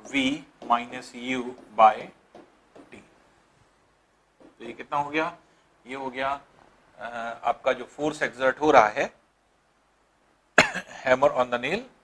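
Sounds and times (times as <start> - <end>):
man coughing: 10.6 - 11.1.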